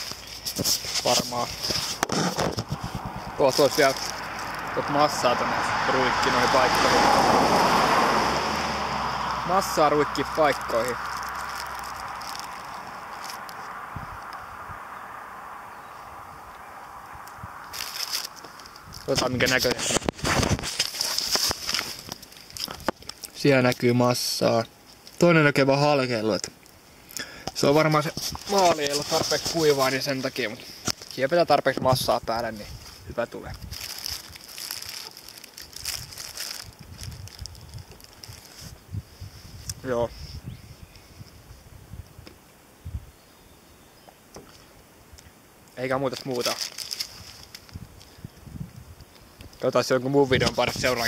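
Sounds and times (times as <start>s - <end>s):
paper wrapper crinkling: 0.0s - 5.3s, 10.2s - 13.8s, 17.7s - 23.4s, 27.6s - 31.4s, 33.5s - 38.8s, 46.0s - 47.8s
steady background hiss: 0.0s - 8.1s, 8.9s - 35.7s, 37.9s - 51.0s.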